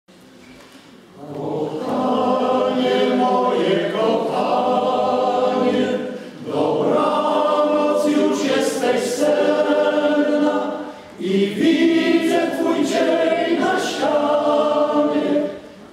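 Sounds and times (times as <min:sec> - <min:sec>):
men's choir singing: 0:01.2 - 0:15.9.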